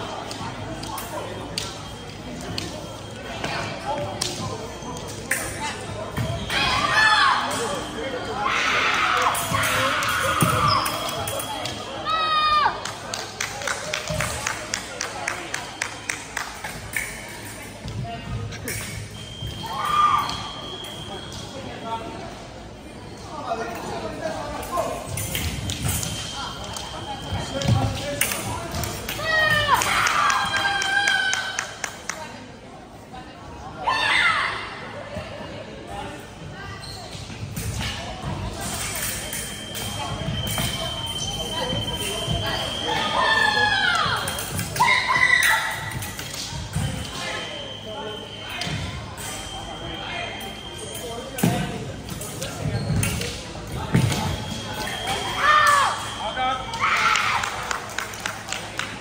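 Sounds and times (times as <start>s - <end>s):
voices echoing in gymnasium: 0.0s - 59.0s.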